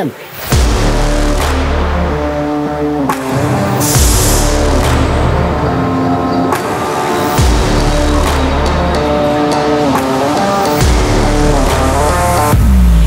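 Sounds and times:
music with steady bass: 0.4s - 13.0s.

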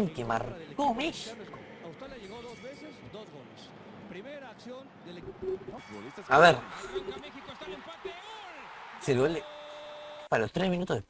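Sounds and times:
faint stadium crowd noise: 0.0s - 10.5s
man commentating: 4.2s - 9.5s.

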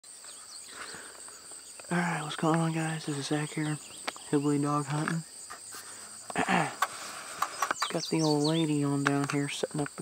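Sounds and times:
insects shrilling: 0.1s - 10.0s.

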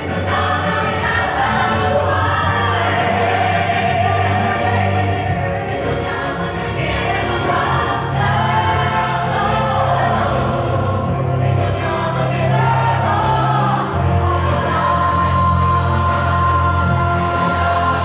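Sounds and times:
music with singing voices: 0.0s - 18.0s.

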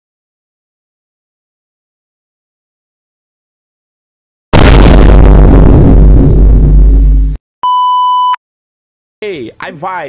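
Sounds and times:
loud distorted noise blast: 4.5s - 7.4s
high censor bleep: 7.6s - 8.4s.

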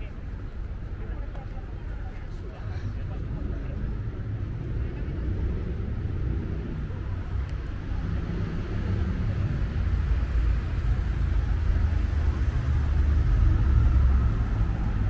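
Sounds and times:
faint voices of passers-by: 0.0s - 15.0s
passing cars rumbling: 2.5s - 15.0s.

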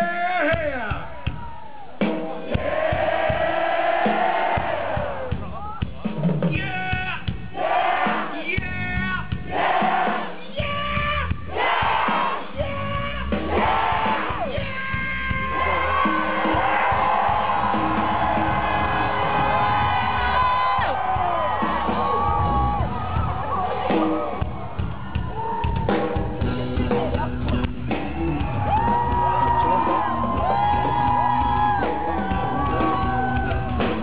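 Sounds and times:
audience noise: 0.0s - 6.6s, 7.4s - 34.0s
live rock band: 0.0s - 34.0s.

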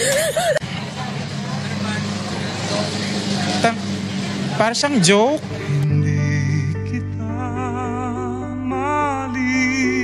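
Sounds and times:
person laughing: 0.0s - 0.6s.

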